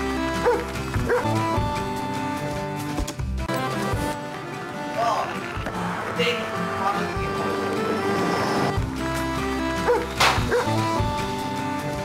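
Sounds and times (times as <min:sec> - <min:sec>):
music with held notes: 0:00.0 - 0:05.9, 0:06.5 - 0:12.0.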